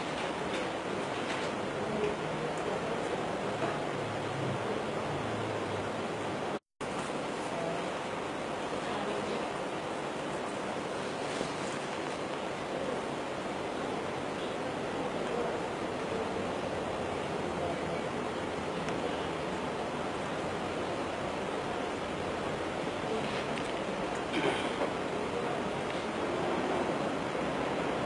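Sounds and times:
steady rushing background noise: 0.0 - 28.0.

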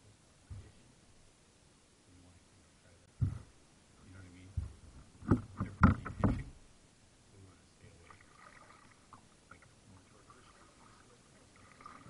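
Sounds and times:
faint water sounds: 0.0 - 12.0
paddle knocking on hull: 3.2 - 3.5, 4.6 - 6.6.

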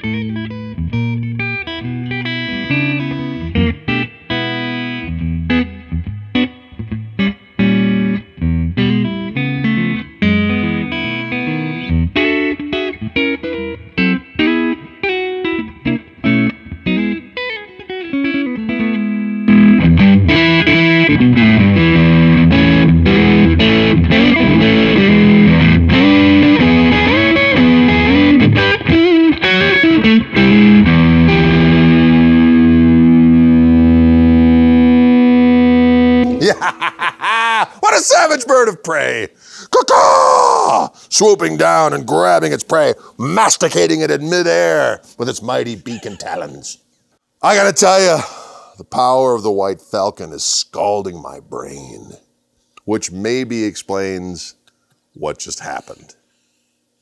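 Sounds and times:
guitar chord ringing: 0.0 - 36.4
electric guitar through amplifier: 0.0 - 37.1.

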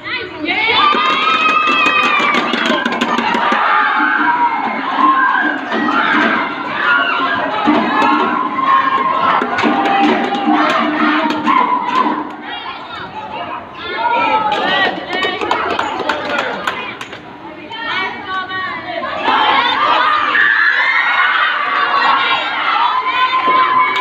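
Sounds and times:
children cheering and shouting: 0.0 - 17.0, 18.9 - 24.0.

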